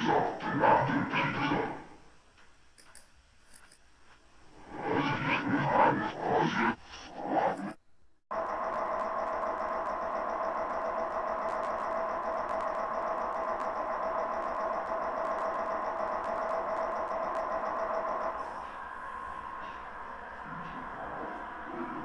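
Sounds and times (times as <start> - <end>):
electronic drone: 4.5 - 22.0.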